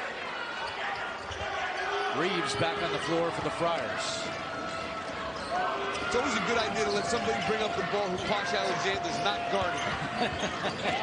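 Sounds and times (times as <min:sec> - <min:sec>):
arena crowd noise: 0:00.0 - 0:11.0.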